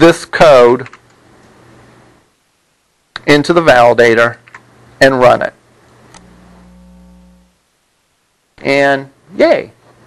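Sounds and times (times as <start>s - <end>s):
faint low steady hum: 0.0s - 10.0s.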